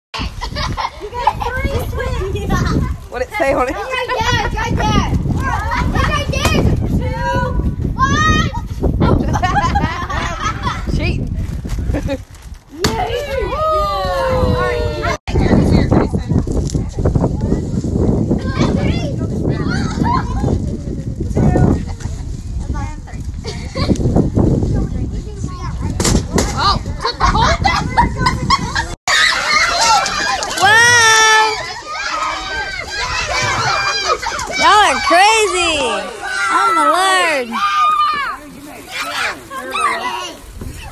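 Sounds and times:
children shouting and squealing: 0.2s - 10.9s, 12.7s - 15.6s, 17.5s - 21.8s, 25.3s - 40.9s
voices talking and calling out: 0.2s - 40.9s
children shrieking: 29.1s - 40.9s.

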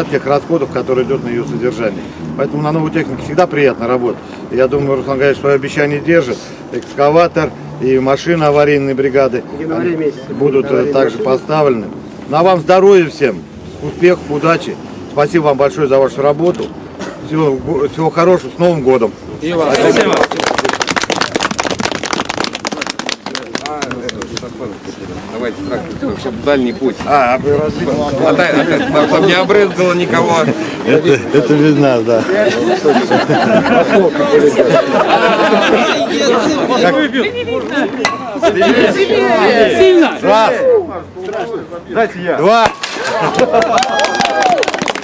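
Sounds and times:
people applauding: 19.7s - 24.5s, 43.0s - 45.0s.

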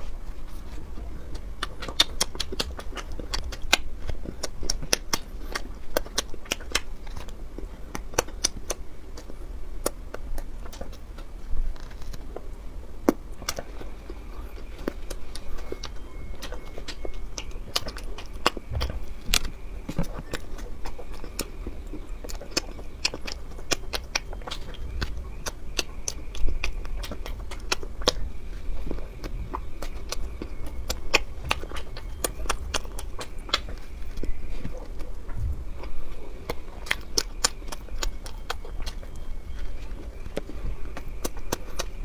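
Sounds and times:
crisp chewing crunches: 0.0s - 42.0s
wet mouth clicks: 1.3s - 12.4s, 13.0s - 28.2s, 28.8s - 42.0s.

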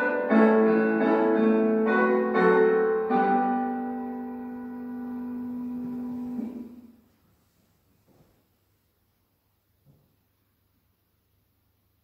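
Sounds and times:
piano playing hymn chords: 0.0s - 7.0s.

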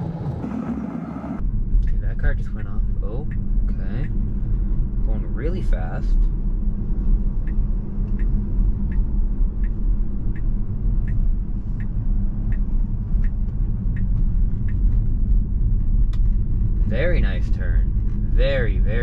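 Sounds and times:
car road and tyre rumble: 0.0s - 19.0s
turn signal ticking: 1.4s - 19.0s.

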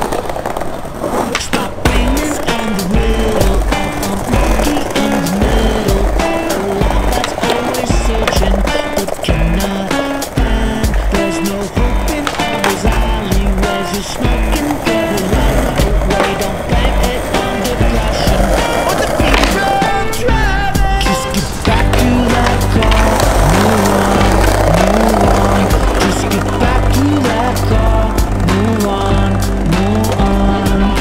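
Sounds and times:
skateboard clacks: 0.0s - 31.0s
skateboard wheels rolling: 0.0s - 31.0s
loud music with heavy bass: 1.9s - 31.0s.

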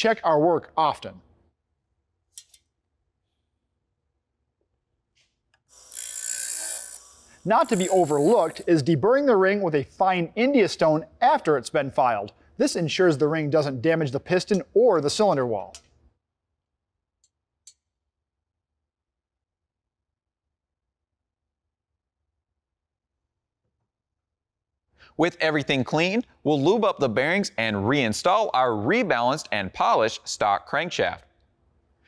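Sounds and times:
abrasive wheel grinding metal: 5.8s - 8.7s.

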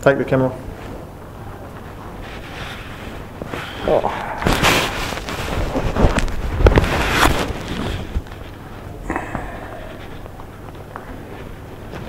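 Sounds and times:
clothing rubbing on microphone: 0.6s - 8.9s.

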